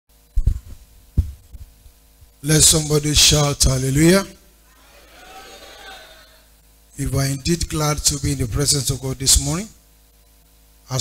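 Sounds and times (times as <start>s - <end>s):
steady electrical hum: 0.1s - 11.0s
microphone handling thumps: 0.3s - 2.4s.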